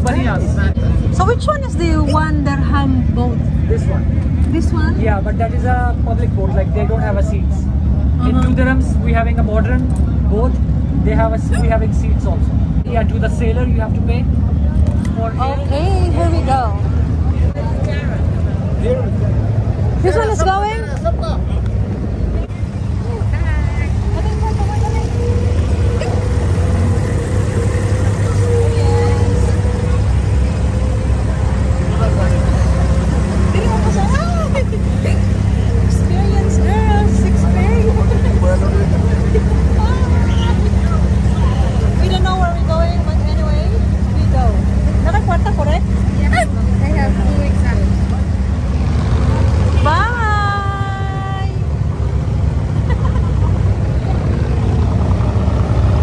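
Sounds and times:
boat diesel engine droning: 0:00.0 - 0:56.0
passenger chatter: 0:00.0 - 0:56.0.

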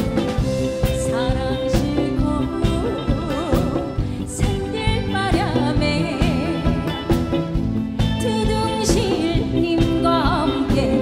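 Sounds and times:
band with steady drum beat: 0:00.0 - 0:11.0
woman singing: 0:00.0 - 0:11.0.

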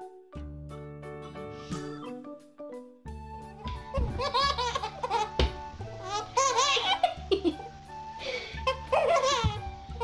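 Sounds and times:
background music: 0:00.0 - 0:10.0
baby laughing: 0:03.8 - 0:07.7, 0:08.6 - 0:10.0.

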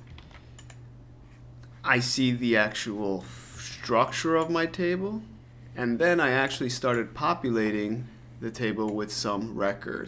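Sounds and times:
computer mouse clicks: 0:00.0 - 0:00.9
steady low hum: 0:00.0 - 0:10.0
man speaking: 0:01.8 - 0:10.0.

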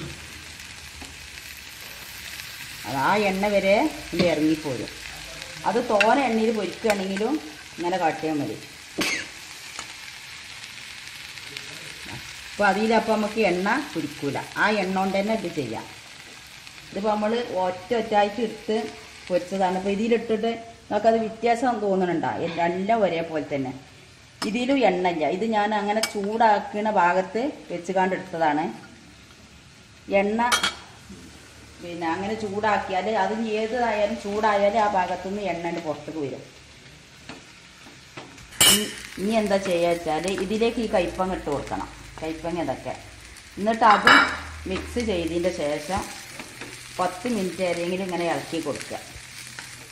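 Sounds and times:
onions sizzling in oil: 0:00.0 - 0:49.9.

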